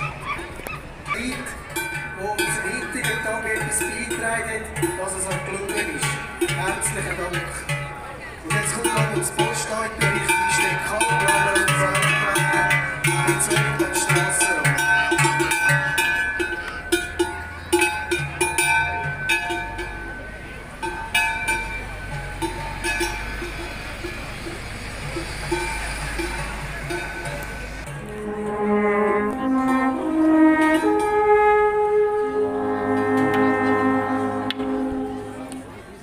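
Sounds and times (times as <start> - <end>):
alphorns playing held notes: 0.0 - 36.0
cowbells clanging: 0.0 - 36.0.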